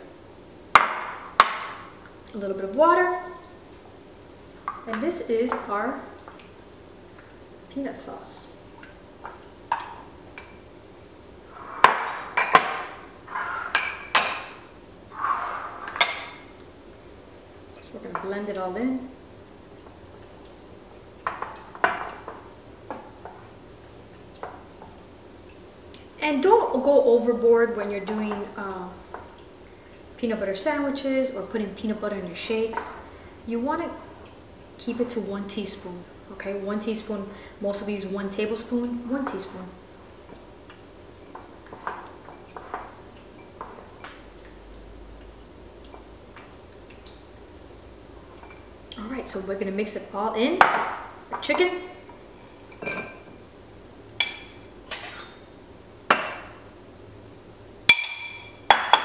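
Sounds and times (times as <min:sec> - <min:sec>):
low room hum: 0:00.0 - 0:59.0
spatula scraping glass bowl: 0:13.3 - 0:13.8, 0:15.1 - 0:16.0.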